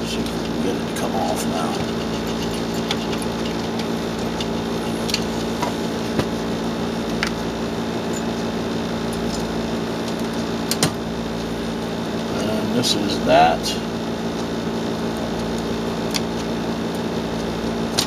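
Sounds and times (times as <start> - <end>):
steady hum: 0.0 - 18.0.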